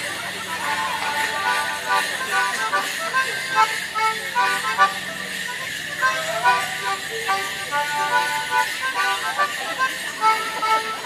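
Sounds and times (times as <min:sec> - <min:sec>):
reed instrument playing folk tune: 0:00.0 - 0:11.0.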